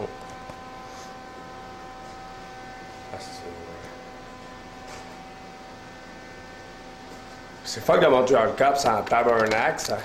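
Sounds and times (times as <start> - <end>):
thin electrical hum: 0.0 - 10.0.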